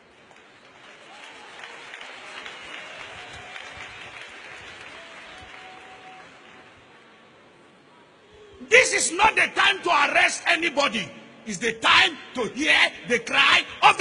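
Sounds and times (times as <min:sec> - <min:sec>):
congregation applauding: 0:00.0 - 0:07.1.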